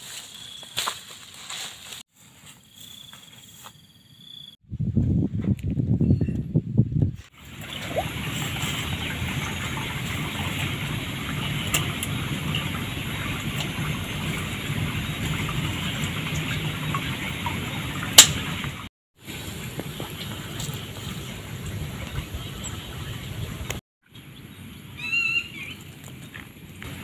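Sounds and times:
steady rushing outdoor noise: 7.4s - 24.5s.

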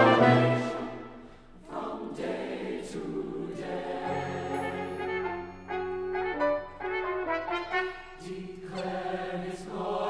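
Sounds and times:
large choir singing: 0.0s - 5.5s, 8.2s - 10.0s.

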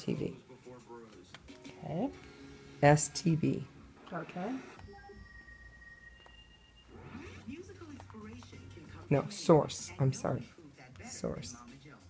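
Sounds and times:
faint high beep: 4.8s - 7.4s.

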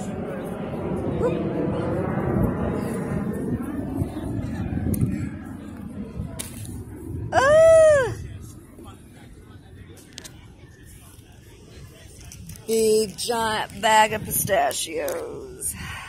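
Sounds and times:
faint voices: 0.0s - 16.0s.

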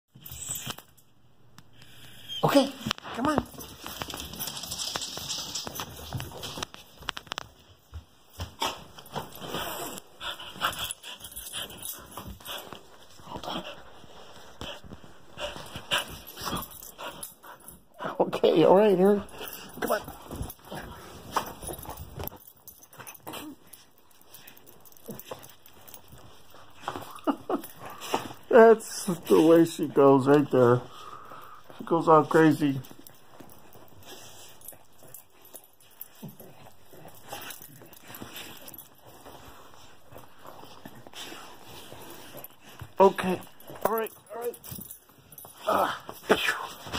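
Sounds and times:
dog panting and snuffling: 8.4s - 46.9s.

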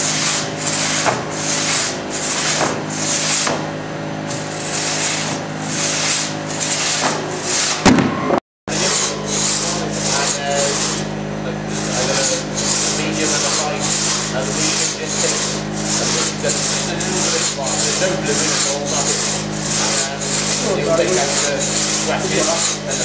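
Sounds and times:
crosscut saw cutting log: 0.0s - 7.9s, 8.7s - 23.0s.

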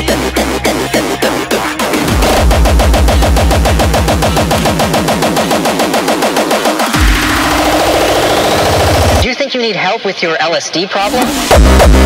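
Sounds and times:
deep kick drum: 0.0s - 7.9s
distorted kick drum roll: 0.0s - 9.3s, 11.4s - 12.0s.

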